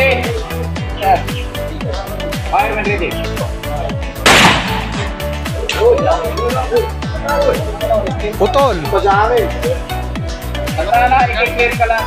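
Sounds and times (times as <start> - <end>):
shotgun shot: 4.3 - 5.3.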